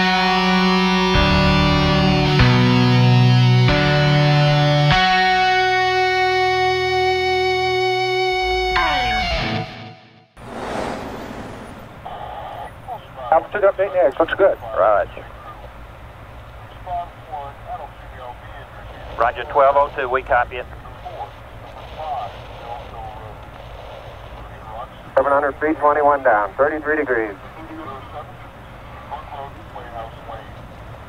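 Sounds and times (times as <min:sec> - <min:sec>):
steady low hum: 0:10.4 - 0:13.0
low rumble of static: 0:10.4 - 0:31.0
muffled radio voice: 0:17.8 - 0:21.3.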